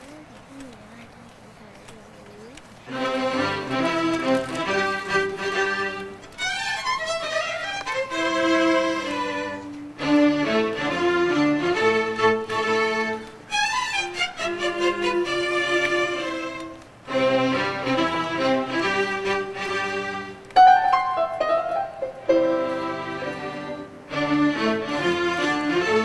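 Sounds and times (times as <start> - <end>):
string orchestra playing: 2.9 - 26.0.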